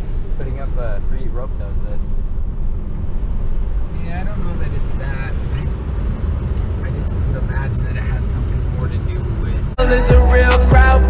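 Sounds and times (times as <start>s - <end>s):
road and engine rumble in cabin: 0.0s - 11.0s.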